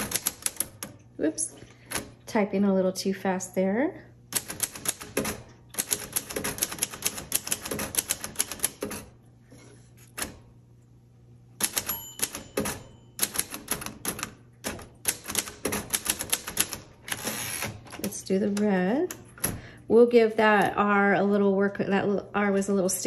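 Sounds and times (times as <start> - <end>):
typewriter keystrokes: 0.0 - 1.0, 4.3 - 9.1, 11.6 - 18.7
typewriter bell ding: 11.6 - 13.6.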